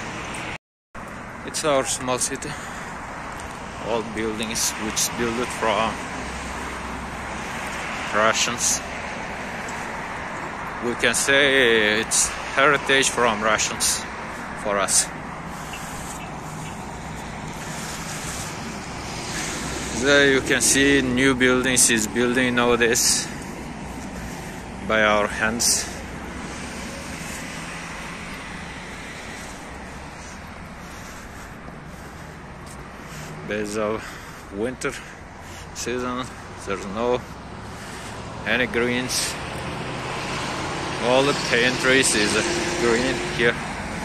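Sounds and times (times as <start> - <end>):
city background rumble: 0.0 - 44.0.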